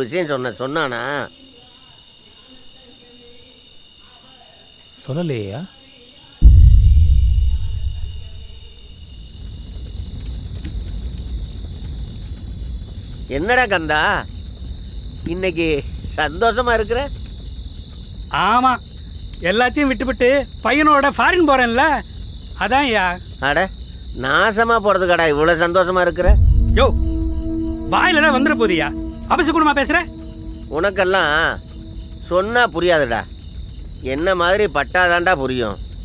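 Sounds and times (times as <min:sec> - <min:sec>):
crickets chirring: 0:00.0 - 0:36.0
deep boom: 0:06.4 - 0:08.9, 0:25.5 - 0:33.3.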